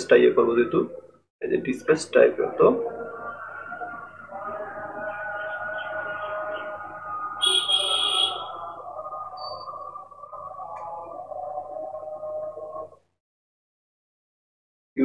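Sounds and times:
wavering pitched hum: 2.9s - 12.7s.

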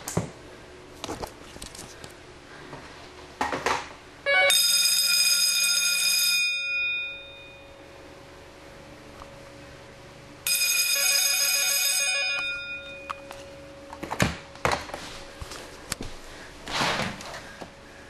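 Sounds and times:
electric fire bells ringing: 4.2s - 9.2s, 10.4s - 14.6s.

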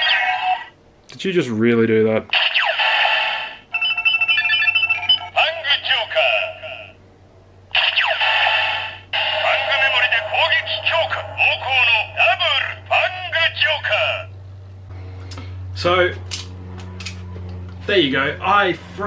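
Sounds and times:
toy sound effects: 0.0s - 0.7s, 2.4s - 6.0s, 7.8s - 12.8s
toy beeping jingle: 3.7s - 5.4s
recorded voice calls: 5.2s - 7.0s, 9.3s - 14.4s.

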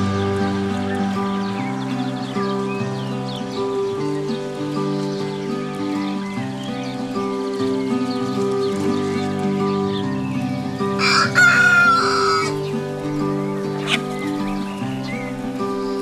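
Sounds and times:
soft background music: 0.0s - 16.0s
rooster crowing: 11.0s - 12.6s.

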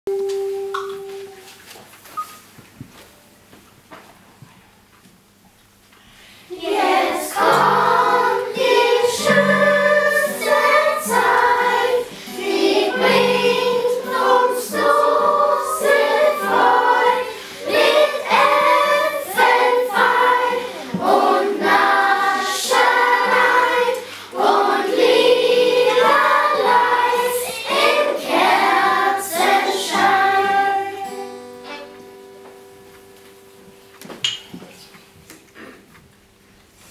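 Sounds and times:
wooden xylophones: 0.1s - 1.6s
children singing: 6.5s - 31.8s.

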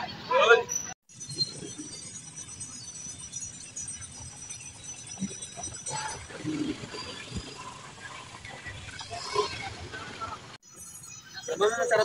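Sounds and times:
scattered indistinct sounds: 0.7s - 12.0s.

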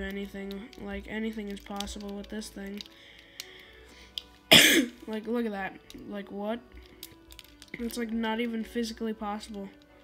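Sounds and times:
plastic cube clicking: 0.0s - 4.5s, 6.8s - 10.0s
person coughing: 4.5s - 5.0s.

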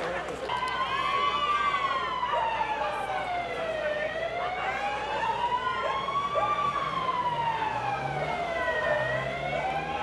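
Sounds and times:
siren wailing: 0.5s - 10.0s.

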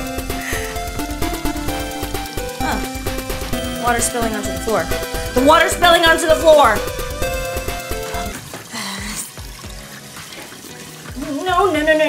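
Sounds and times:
background music with light beat: 0.0s - 12.0s
water splashing onto floor: 0.2s - 12.0s.

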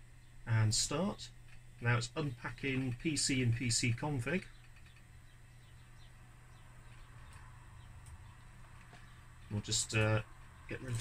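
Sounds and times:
distant birdsong: 0.0s - 11.0s
steady low hum: 0.0s - 11.0s.

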